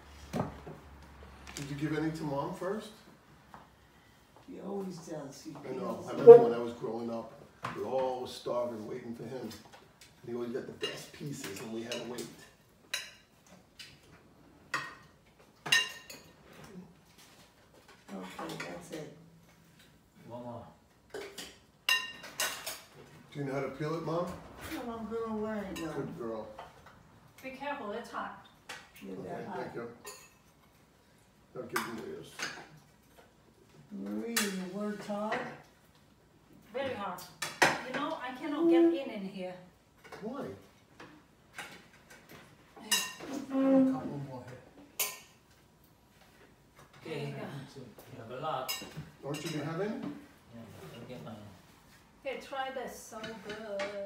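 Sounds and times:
dishes and cutlery clinking: 0:10.7 - 0:19.9, 0:21.0 - 0:23.2, 0:30.0 - 0:31.0, 0:31.7 - 0:35.8, 0:40.0 - 0:45.6, 0:48.6 - 0:50.9.

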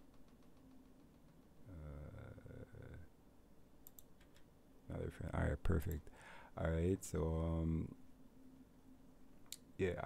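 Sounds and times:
man murmuring: 0:01.6 - 0:03.2
faint clicks: 0:03.8 - 0:04.5.

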